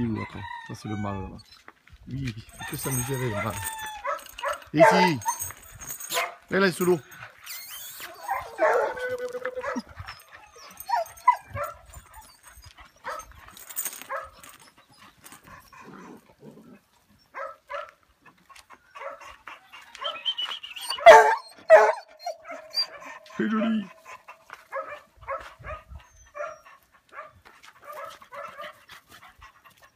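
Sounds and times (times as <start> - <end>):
dogs barking and whining: 2.5 - 29.9
dog barking loudly: 3.4 - 5.4, 6.1 - 6.4, 8.2 - 9.0, 17.4 - 18.0, 19.0 - 19.3, 21.0 - 28.8.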